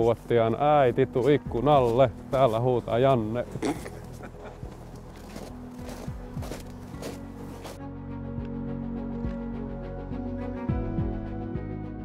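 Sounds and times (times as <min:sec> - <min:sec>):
footsteps crunching in snow: 0:00.0 - 0:07.8
soft background music: 0:00.0 - 0:12.0.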